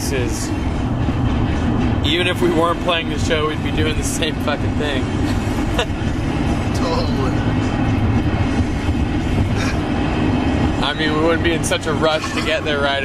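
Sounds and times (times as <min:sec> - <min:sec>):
vehicle cabin road rumble: 0:00.0 - 0:13.0.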